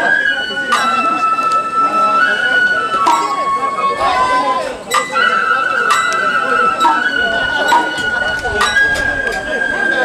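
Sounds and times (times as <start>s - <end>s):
bamboo flute high note: 0.0s - 10.0s
crowd voices: 0.0s - 10.0s
sharp percussion strikes: 0.7s - 1.8s, 3.0s - 3.7s, 4.9s - 9.6s.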